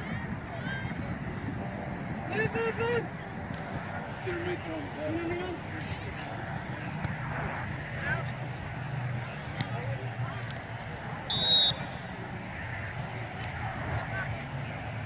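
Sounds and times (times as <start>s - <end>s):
referee's whistle blast: 11.3s - 12.2s.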